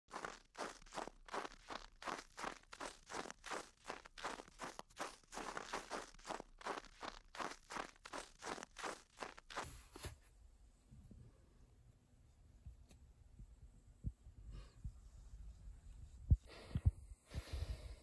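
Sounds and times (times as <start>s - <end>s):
footsteps crunching through snow: 0.1s - 10.2s.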